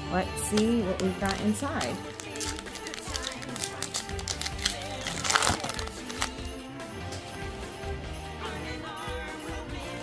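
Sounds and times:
background music: 0.0 - 10.0
foil wrapper crinkling: 0.6 - 6.5.

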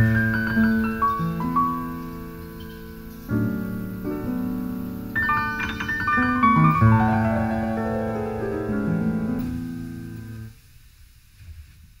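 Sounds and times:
piano chord ringing: 0.0 - 10.5.

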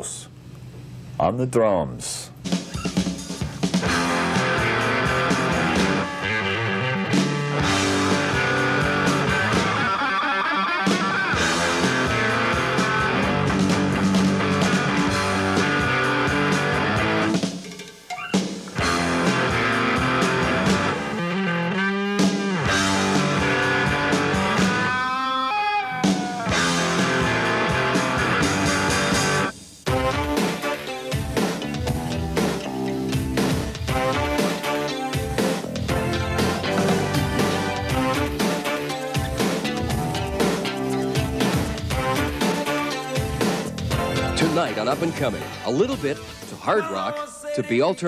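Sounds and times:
drum kit: 2.3 - 47.0
electric guitar: 2.5 - 46.6.

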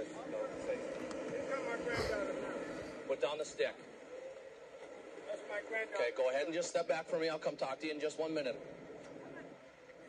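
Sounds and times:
faint street background: 0.0 - 10.0.

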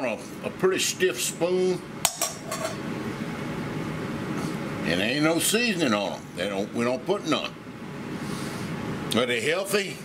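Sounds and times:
metal spoon clinking bowl: 2.1 - 2.8.

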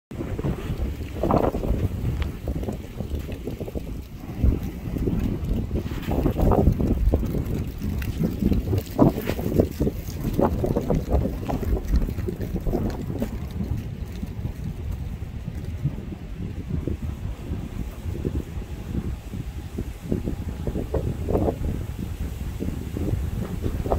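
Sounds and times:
wind buffeting microphone: 0.1 - 23.9.

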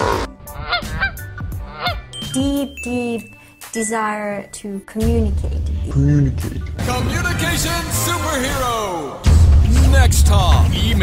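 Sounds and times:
goose honking: 0.0 - 2.0.

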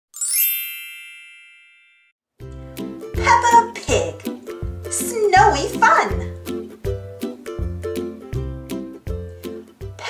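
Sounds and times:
chime ding with shimmer: 0.2 - 2.1.

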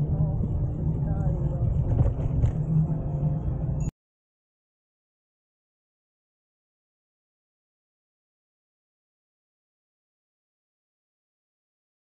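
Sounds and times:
wind noise on microphone: 0.0 - 3.9.

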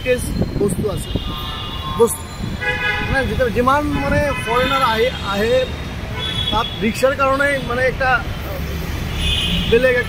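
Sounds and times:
traffic noise: 0.0 - 10.0
vehicle horns honking: 0.9 - 7.9, 9.1 - 10.0.

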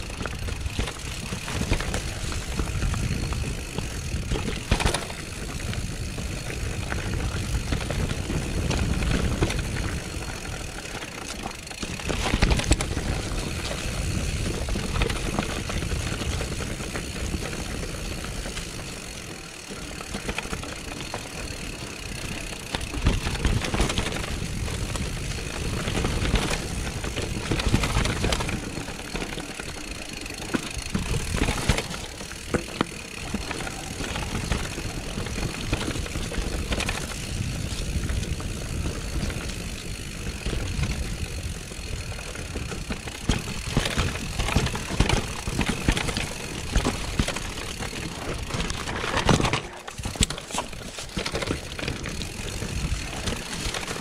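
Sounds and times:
bike rattling over rocks: 0.0 - 54.0.

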